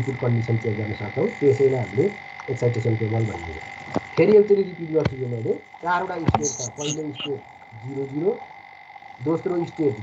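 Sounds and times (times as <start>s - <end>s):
garbled man's voice: 0.0s - 3.6s, 4.2s - 8.4s, 9.2s - 10.0s
faint high whine: 0.0s - 10.0s.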